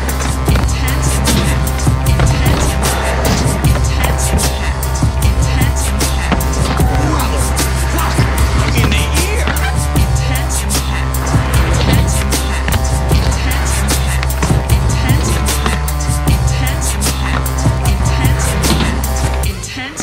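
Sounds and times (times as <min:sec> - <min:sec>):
skateboard wheels rolling on concrete: 0:00.0 - 0:19.9
music with steady beat and bass: 0:00.0 - 0:20.0.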